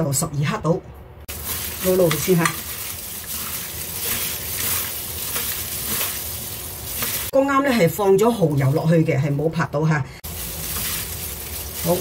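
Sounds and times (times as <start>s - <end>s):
wet squelching of meat: 1.3s - 7.3s
plastic gloves rustling: 1.3s - 9.0s, 10.2s - 12.0s.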